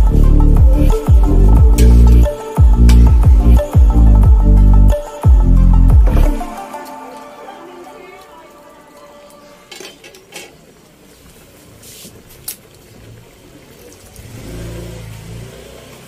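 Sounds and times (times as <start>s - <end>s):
background music: 0.0s - 10.3s.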